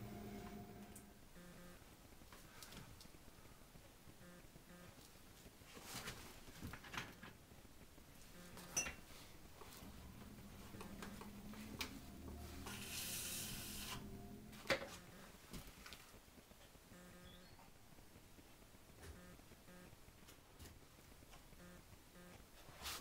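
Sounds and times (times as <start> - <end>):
potter's wheel humming: 0.0 - 1.9, 8.3 - 15.6.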